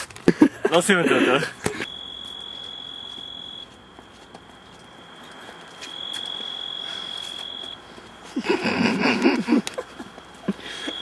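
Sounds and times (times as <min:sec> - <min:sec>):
insect trilling: 0:01.8 - 0:03.8, 0:05.8 - 0:11.0.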